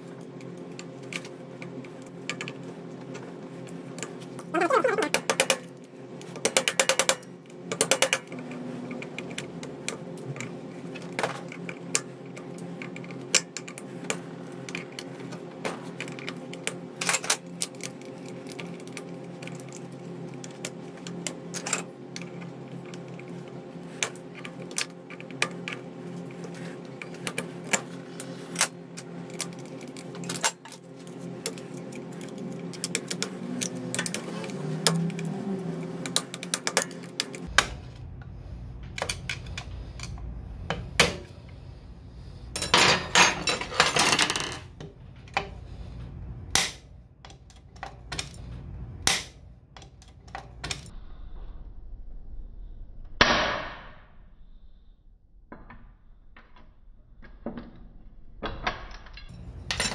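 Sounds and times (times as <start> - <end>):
steady low hum: 0.0 - 59.9
metal tools clicking and scraping: 28.5 - 35.3, 42.5 - 45.6, 59.0 - 59.9
low rumble: 37.5 - 42.6, 50.9 - 53.2.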